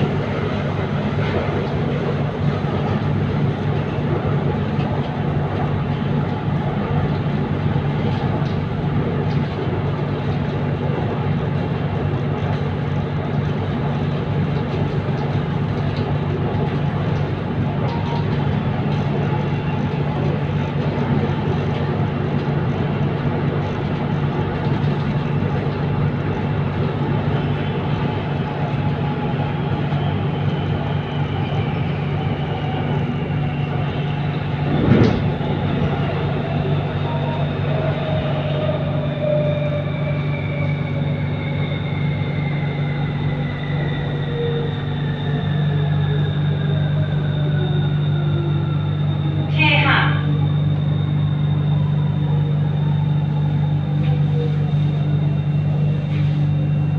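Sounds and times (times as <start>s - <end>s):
train rumble and electric hum: 0.0s - 56.9s.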